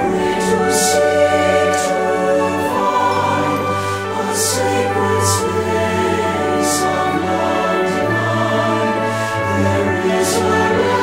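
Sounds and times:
choir singing sacred anthem: 0.0s - 11.0s
instrumental accompaniment: 0.0s - 11.0s.

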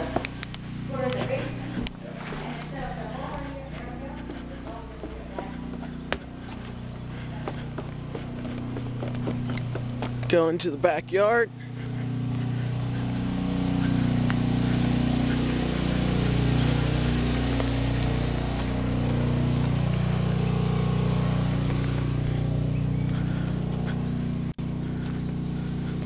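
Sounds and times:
generator engine humming: 0.0s - 26.0s.

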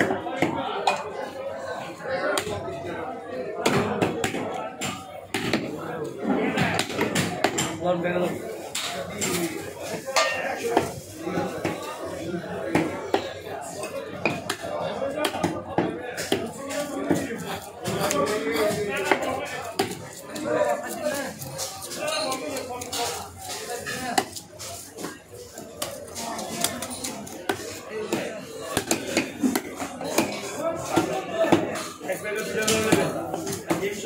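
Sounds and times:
voices chattering: 0.0s - 34.0s.

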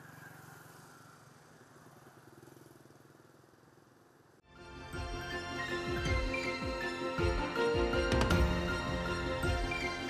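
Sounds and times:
small motorbike engines passing: 0.0s - 4.4s.

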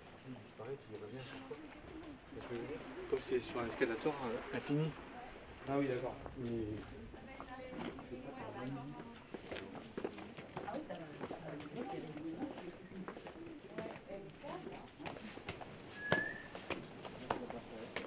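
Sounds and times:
footsteps on stone paving: 0.0s - 3.3s, 6.2s - 18.0s.

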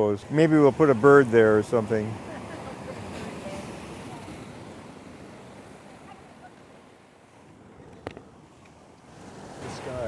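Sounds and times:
ocean surf on shore: 0.0s - 10.0s.

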